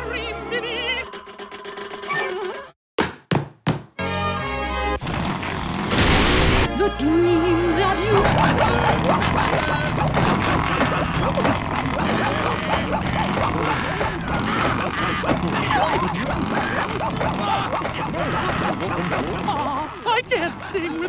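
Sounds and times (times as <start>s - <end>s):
crash: 5.9s - 6.7s.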